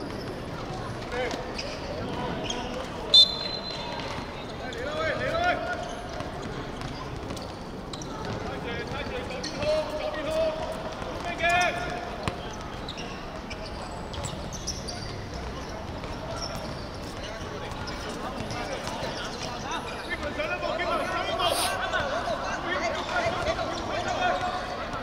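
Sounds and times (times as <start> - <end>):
short sharp whistle blast: 3.1 - 3.8.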